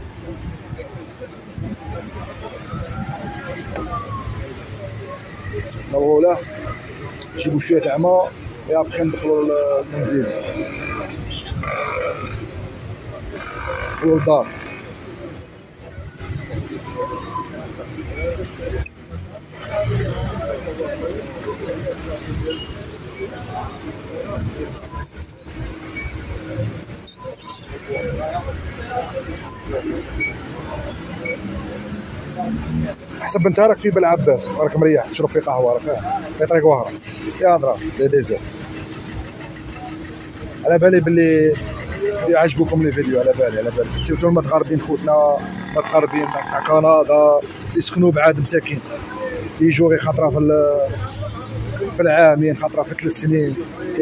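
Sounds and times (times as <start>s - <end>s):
people's voices: 0.0s - 54.0s
road noise rumble: 0.0s - 54.0s
vehicle engines at low speed: 0.0s - 54.0s
truck engine passing: 35.6s - 47.8s.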